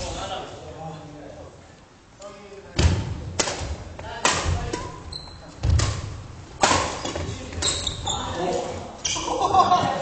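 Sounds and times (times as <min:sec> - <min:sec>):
rackets hitting shuttlecock: 0:02.8 - 0:04.9, 0:05.6 - 0:07.8.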